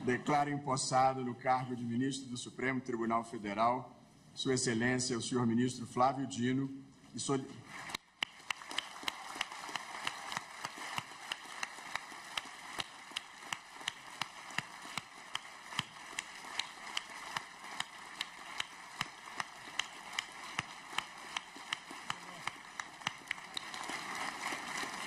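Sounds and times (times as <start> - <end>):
audience applauding: 7.7 - 25.0
loud even clap: 7.7 - 25.0.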